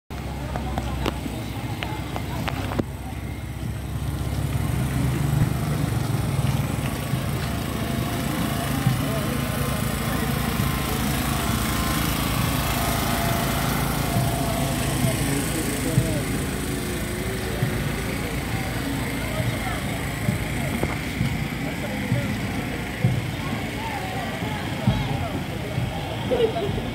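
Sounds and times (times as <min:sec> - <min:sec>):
crowd chatter: 0:00.1 - 0:26.9
small engine running: 0:00.1 - 0:26.9.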